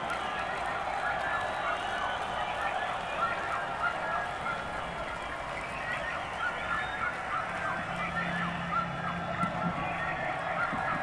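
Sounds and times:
crowd cheering: 0.0 - 11.0
whistles: 1.2 - 3.4, 5.2 - 7.4.

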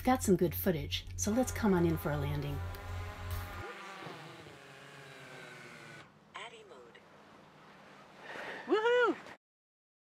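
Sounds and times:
drone motors winding down: 1.2 - 6.1.

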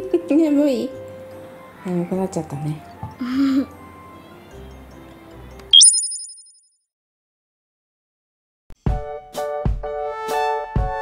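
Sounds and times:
bright electronic chime: 5.8 - 6.5.

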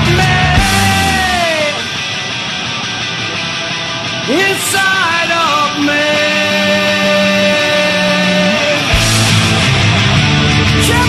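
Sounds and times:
bass line: 0.0 - 11.0
electric guitar ringing chords: 0.0 - 11.0
punk rock band playing: 0.0 - 11.0
drum hit: 9.0 - 10.4.

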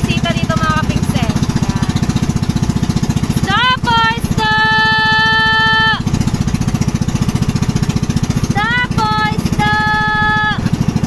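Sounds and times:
small engine chugging: 0.0 - 11.0.

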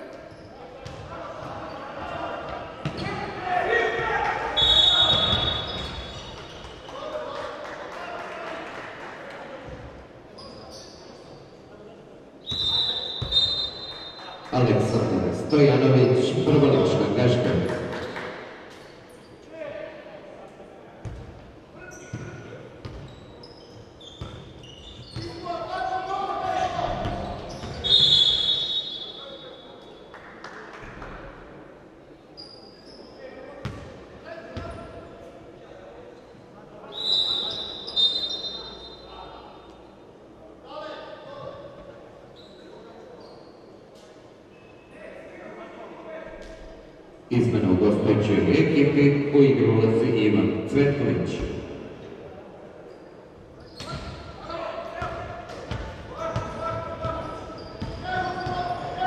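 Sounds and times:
shoes squeaking on floor: 4.6 - 6.9, 10.4 - 11.5, 21.8 - 25.5, 27.1 - 29.0, 42.3 - 43.8, 52.9 - 54.3, 57.0 - 59.0
basketball bouncing on wooden court: 33.6 - 33.9, 57.8 - 58.7.

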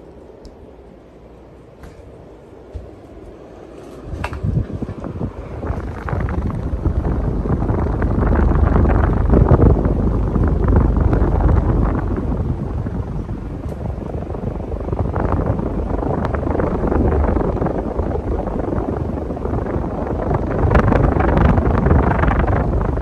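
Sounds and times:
ceiling fan air rush on microphone: 0.0 - 23.0.

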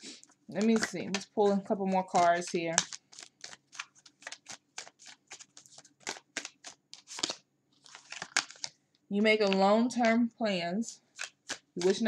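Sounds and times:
cards being shuffled: 0.5 - 8.8, 11.2 - 12.0.

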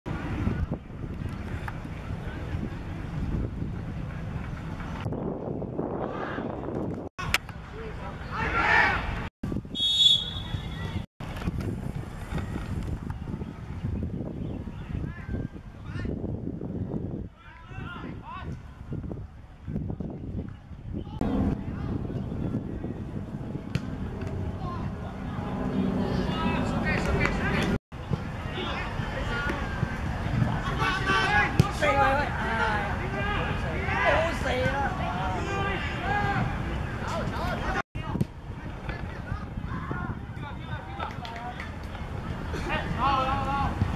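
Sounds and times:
wind buffeting microphone: 0.1 - 8.0, 9.0 - 43.9
faint voices: 20.6 - 43.9
steady low rumble: 21.1 - 27.8
people shouting: 30.6 - 32.0.

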